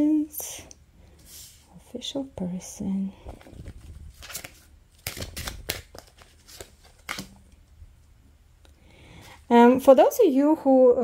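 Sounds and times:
cards sliding and slapping: 3.3 - 7.4.

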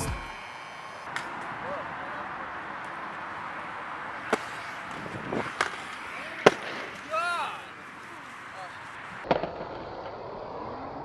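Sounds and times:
skateboard wheels rolling: 0.0 - 11.0
skateboard clack: 0.4 - 8.0, 8.7 - 10.9.

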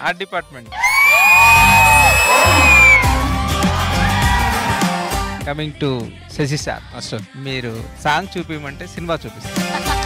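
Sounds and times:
background music: 0.0 - 10.0
long shrill whistle: 0.8 - 3.1
crowd whooping: 0.8 - 4.9.

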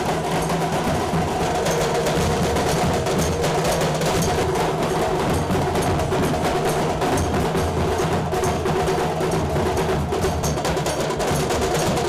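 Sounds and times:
snare drums beaten with sticks: 0.0 - 12.0.

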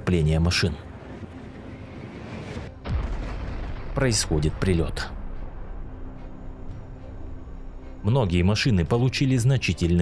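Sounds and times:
faint background music: 0.0 - 10.0
explosion boom rumbling: 2.5 - 5.7.

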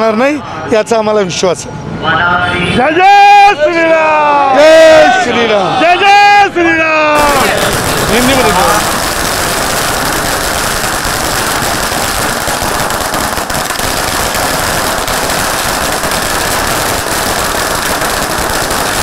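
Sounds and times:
firecrackers going off: 7.2 - 19.0.

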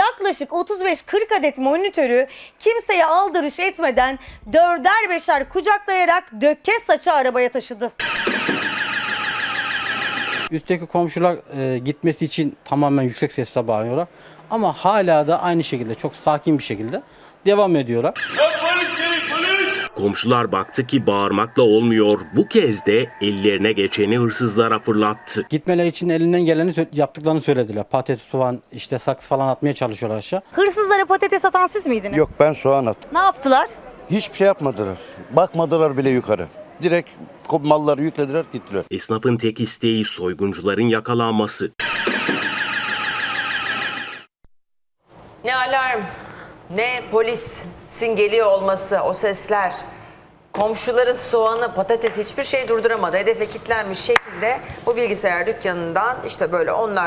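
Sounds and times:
burglar alarm siren warbling: 8.0 - 10.6, 18.2 - 25.5, 41.8 - 44.4.

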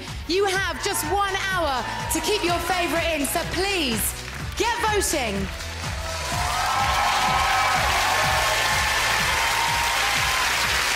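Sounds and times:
theme music with steady beat: 0.0 - 10.9
audience cheering and applauding: 0.2 - 10.9.

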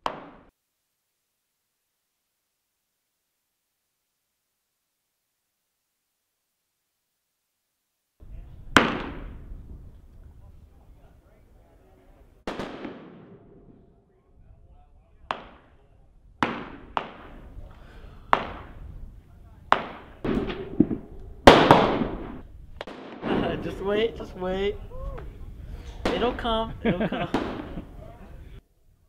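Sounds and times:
rifle gunshots with echo: 8.7 - 9.6, 12.4 - 13.9, 16.4 - 24.3, 25.9 - 26.5, 27.1 - 28.0.

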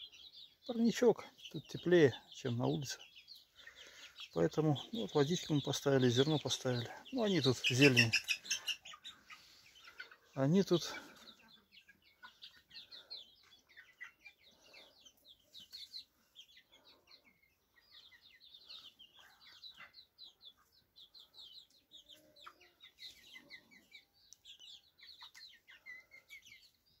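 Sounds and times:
young chickens peeping: 0.0 - 27.0.

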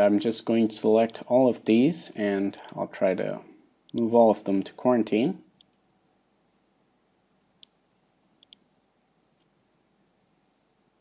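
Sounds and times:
computer mouse clicks: 5.6 - 5.8, 8.4 - 8.7.

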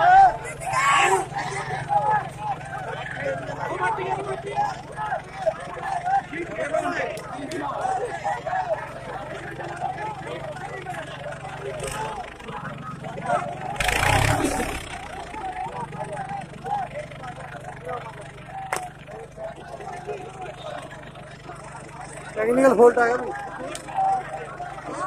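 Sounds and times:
crowd chatter: 0.0 - 25.0
diesel tractor engine running: 0.0 - 25.0
loud rush of noise: 13.8 - 15.6.

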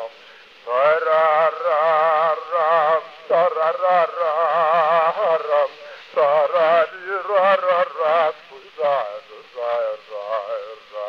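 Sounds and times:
man singing with vibrato: 0.0 - 11.0.

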